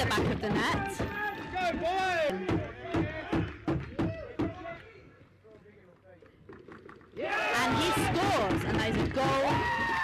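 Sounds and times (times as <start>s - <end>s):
lacrosse sticks and ball knocking: 6.0s - 9.9s.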